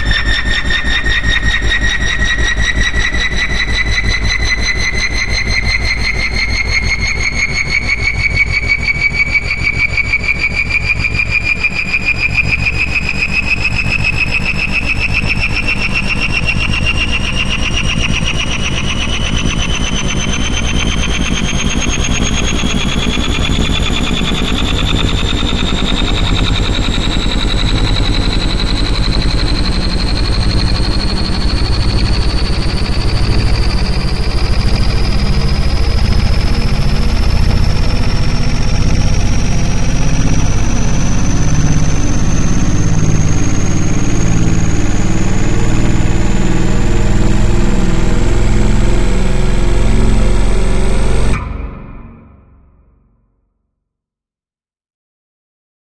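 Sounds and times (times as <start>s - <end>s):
rising whine: 0.0s - 53.0s.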